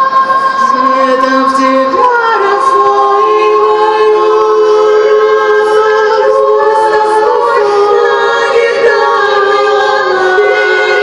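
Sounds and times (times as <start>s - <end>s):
female vocal ensemble singing: 0.0s - 11.0s.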